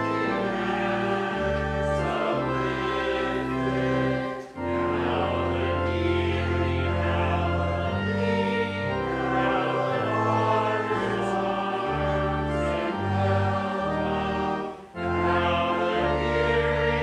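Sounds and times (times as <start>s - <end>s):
choir singing sustained chords: 0.0s - 17.0s.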